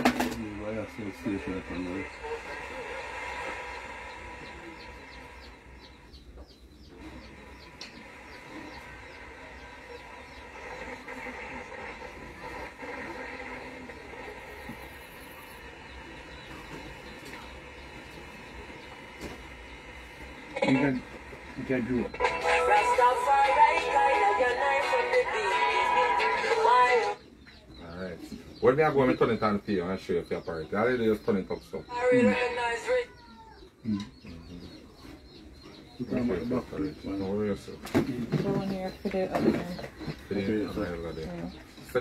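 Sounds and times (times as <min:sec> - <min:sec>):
radio static and hiss: 0:00.0 - 0:06.1, 0:06.9 - 0:27.2
radio station sound: 0:00.0 - 0:06.1, 0:06.9 - 0:27.2, 0:27.8 - 0:33.1, 0:36.0 - 0:42.0
wavering radio tones: 0:00.0 - 0:06.1, 0:06.9 - 0:27.2.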